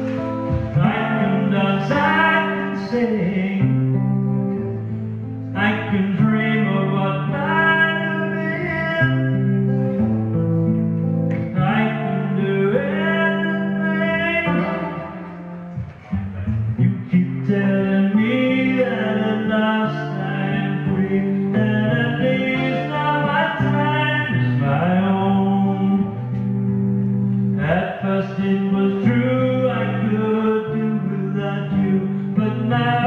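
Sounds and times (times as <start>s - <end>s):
guitar accompaniment: 0.0s - 33.0s
sliding lead melody: 0.0s - 33.0s.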